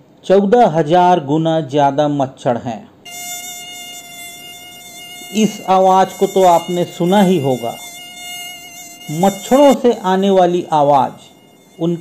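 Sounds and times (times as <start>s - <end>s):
mosquito wings whining: 3.1s - 12.0s.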